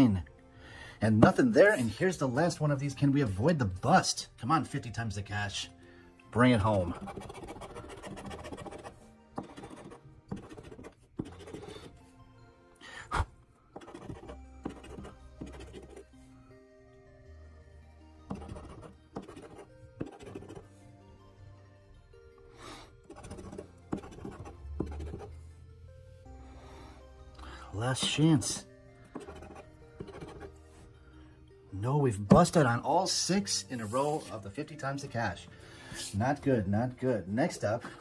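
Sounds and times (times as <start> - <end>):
background music: 0.0 - 38.0
coin scratching lottery ticket: 7.0 - 11.9, 13.8 - 16.1, 18.3 - 20.6, 23.1 - 25.3, 29.2 - 30.5.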